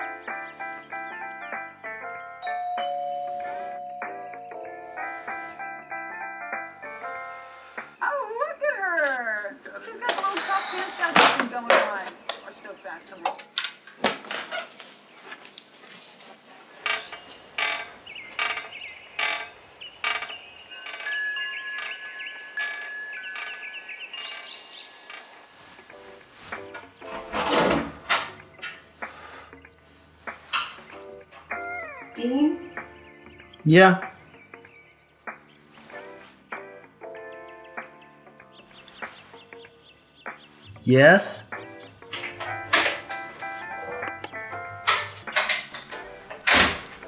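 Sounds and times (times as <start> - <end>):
metal tube wind chimes ringing: 2.4 - 5.2, 19.2 - 25.7.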